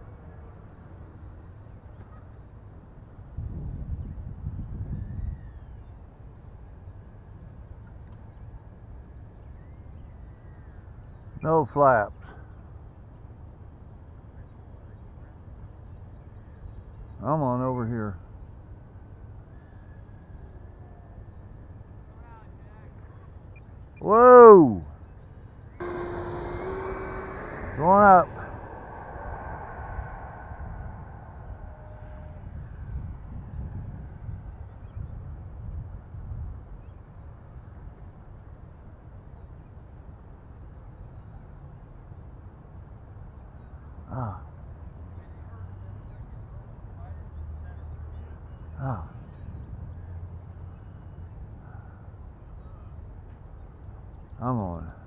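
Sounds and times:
wind rumble on microphone: 3.0s - 8.3s, 25.8s - 39.4s
model jet fan whine: 24.0s - 34.9s.

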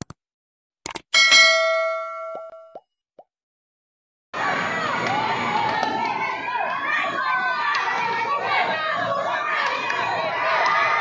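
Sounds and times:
bright bell ding: 1.2s - 2.8s
crowd chatter and shouting: 4.4s - 11.0s.

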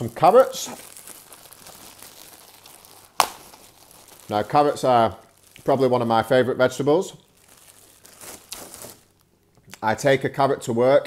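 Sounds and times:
plastic bag tearing snap: 0.0s - 4.8s, 7.5s - 9.1s
plastic bag crinkling: 0.0s - 9.3s.

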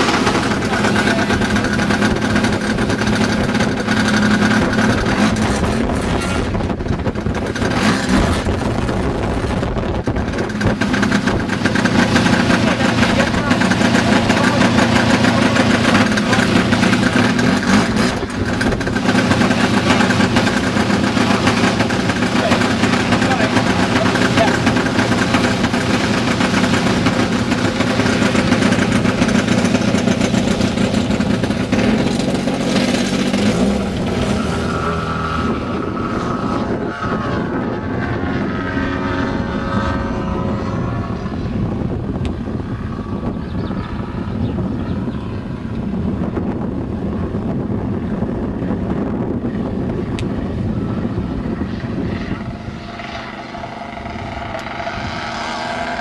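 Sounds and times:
model aircraft engine: 0.0s - 56.0s.

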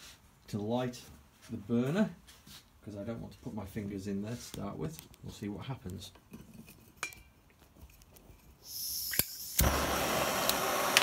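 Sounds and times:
gas hissing from torch: 8.6s - 11.0s
lighter click: 9.0s - 9.8s, 10.4s - 11.0s
small metallic click: 9.1s - 9.7s
torch flame roaring: 9.5s - 11.0s.

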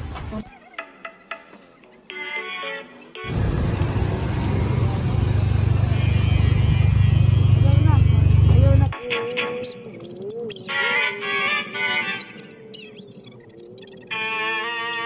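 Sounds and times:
street noise low rumble with hiss: 3.2s - 9.0s.

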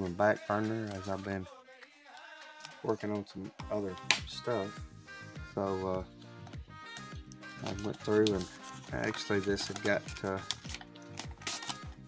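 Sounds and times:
background music: 0.0s - 12.0s
paper envelope rustling: 7.6s - 12.0s.

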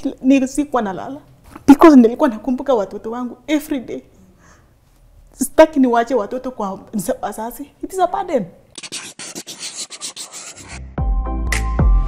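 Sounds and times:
scratchy rasping strokes: 8.8s - 10.8s.

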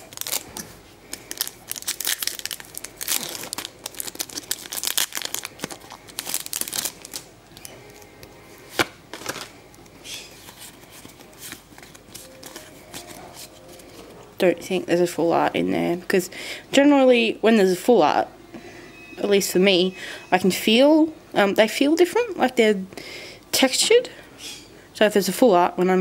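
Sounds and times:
foil wrapper crinkling and tearing: 0.0s - 8.1s, 8.7s - 14.0s
cards rustling: 0.0s - 14.1s.

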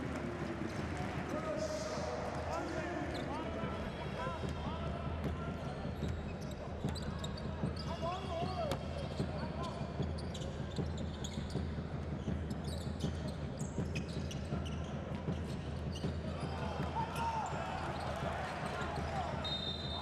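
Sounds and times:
murmur of crowd voices: 0.0s - 20.0s
sneaker squeaks: 5.9s - 16.5s.

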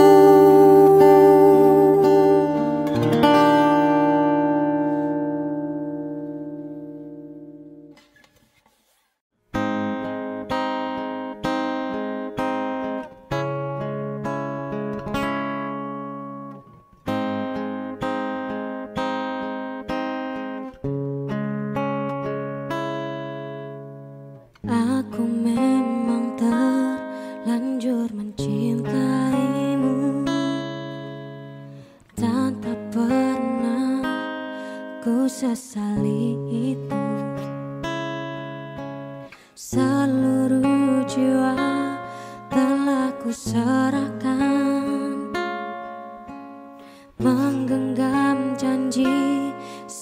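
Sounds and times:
person singing: 0.0s - 6.2s, 24.6s - 31.1s, 32.1s - 37.6s, 39.3s - 45.8s, 46.9s - 50.0s
acoustic guitar: 0.0s - 50.0s.

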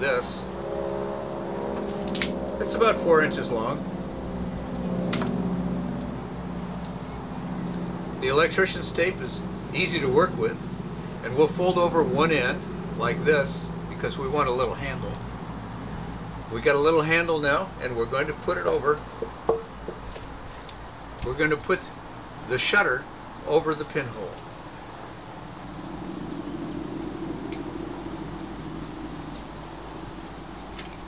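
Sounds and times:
low mechanical hum: 0.0s - 31.0s.

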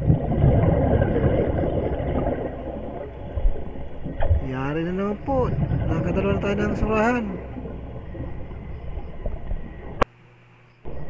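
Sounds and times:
muffled underwater rumble: 0.0s - 10.1s.

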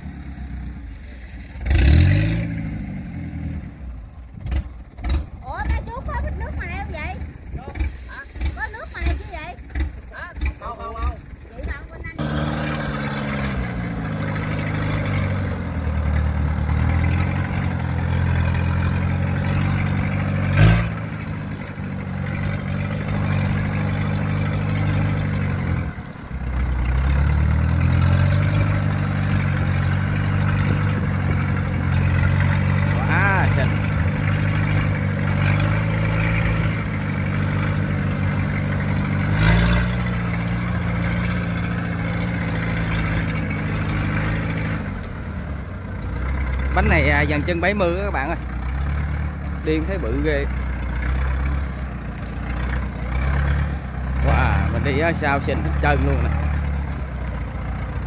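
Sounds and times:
combine harvester diesel engine: 0.0s - 58.0s.

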